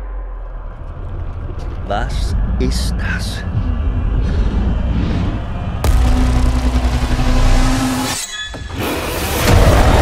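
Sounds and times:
deep low rumble: 0.0s - 8.1s
sustained droning tone: 0.0s - 8.4s.

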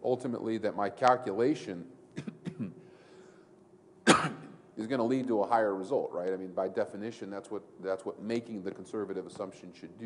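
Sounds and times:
man clearing throat: 2.2s - 2.8s, 4.0s - 4.6s.

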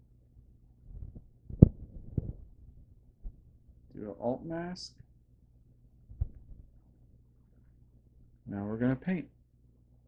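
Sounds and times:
low thumps and clicks: 0.9s - 3.4s, 6.1s - 6.7s.

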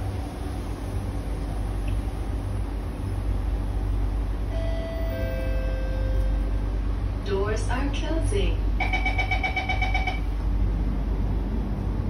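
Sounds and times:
train low hum: 0.0s - 12.0s
two-note door chime: 4.5s - 6.6s.

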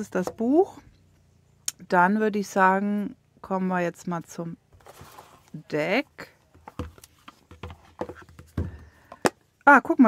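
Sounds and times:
soft taps and knocks: 6.5s - 9.4s.

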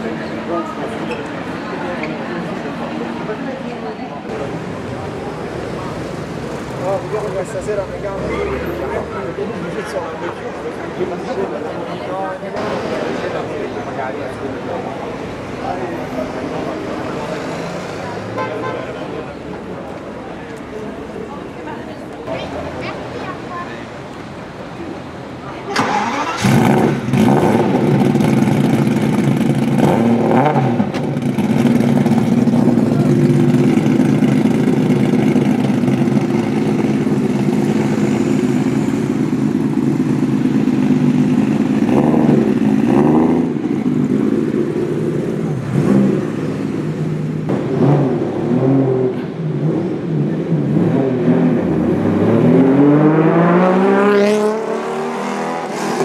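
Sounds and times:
car engine starting and revving: 25.6s - 56.0s.

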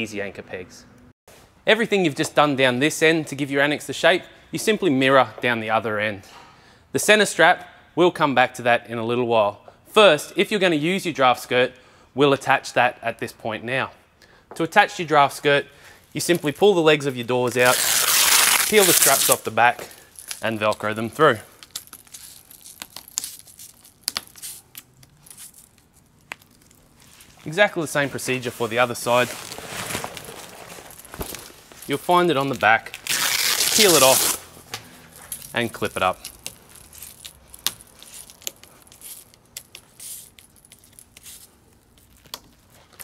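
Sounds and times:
hook-and-loop straps ripping: 16.0s - 43.0s
fabric rustling: 17.5s - 43.0s.

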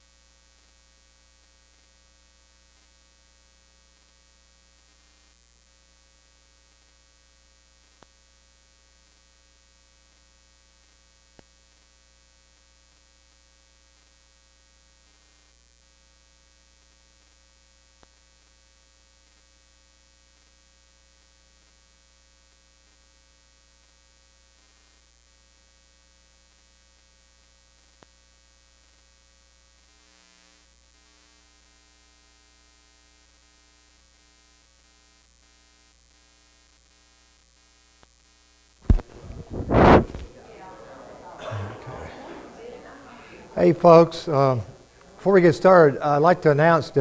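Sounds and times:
electrical mains hum: 0.0s - 47.0s.

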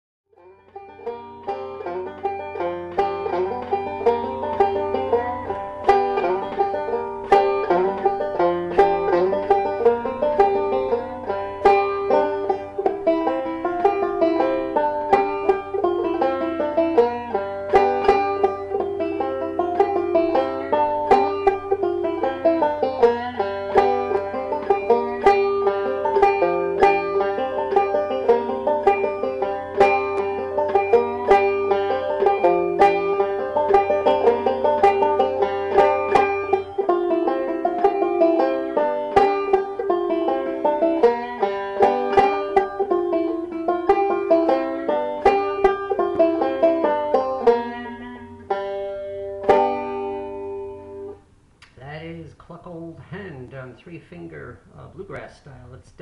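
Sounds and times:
banjo picked rapidly: 0.3s - 54.1s
low steady hum: 0.4s - 56.0s.

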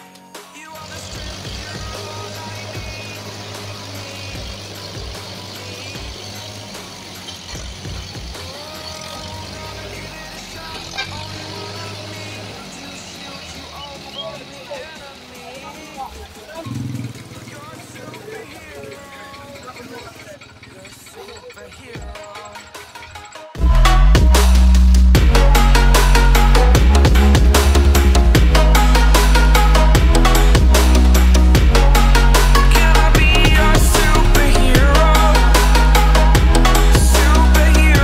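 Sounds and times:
tractor diesel engine straining: 0.0s - 38.0s
men calling out: 0.6s - 23.3s.

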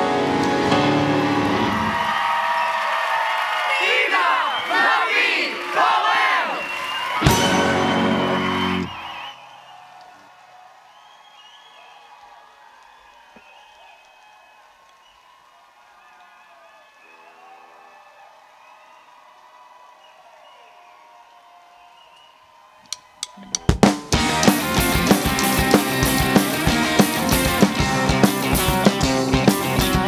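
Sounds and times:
band playing: 0.0s - 2.1s, 7.2s - 9.1s, 23.3s - 30.0s
drum hit: 7.3s - 8.1s.

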